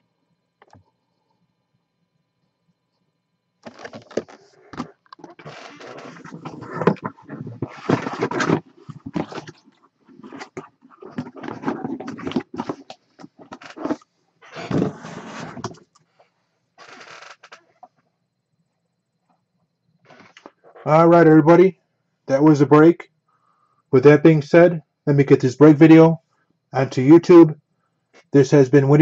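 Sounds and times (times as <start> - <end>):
objects scraping on table: 3.7 - 9.6, 10.2 - 15.8.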